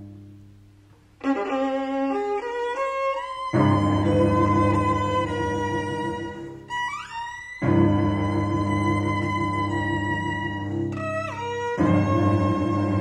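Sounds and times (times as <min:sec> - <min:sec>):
cello sustained low note: 0:01.2 - 0:13.0
violin sliding upward: 0:01.2 - 0:13.0.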